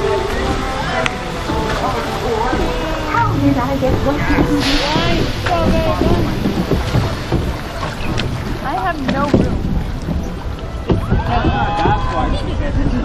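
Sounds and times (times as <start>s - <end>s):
rushing water: 0.0s - 13.0s
wind buffeting microphone: 0.0s - 13.0s.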